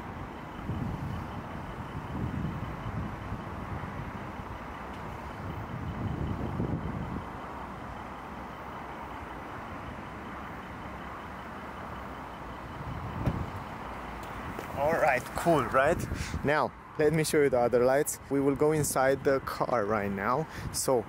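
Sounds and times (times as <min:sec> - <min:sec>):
car engine idling: 0:00.0 - 0:21.0
car door shutting: 0:13.2 - 0:13.6.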